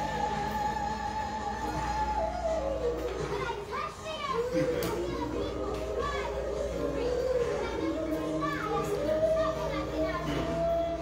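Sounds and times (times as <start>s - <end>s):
children chattering and calling: 0.0s - 11.0s
music playing: 0.0s - 11.0s.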